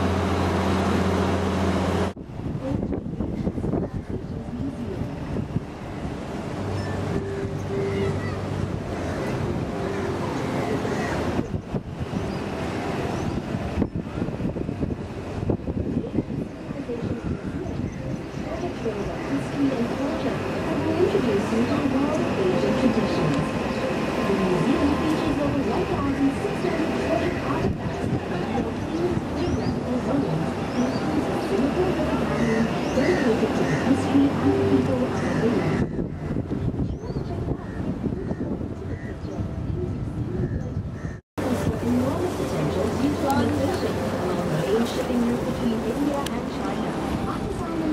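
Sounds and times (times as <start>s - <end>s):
boat engine running: 0.0s - 37.8s, 41.4s - 47.9s
riverside city ambience: 0.0s - 47.9s
wind buffeting microphone: 0.0s - 47.9s
indistinct voices talking: 6.8s - 47.9s.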